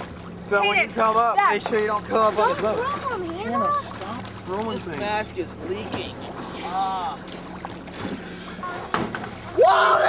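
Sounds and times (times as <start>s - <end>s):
boat motor idling: 0.0s - 9.6s.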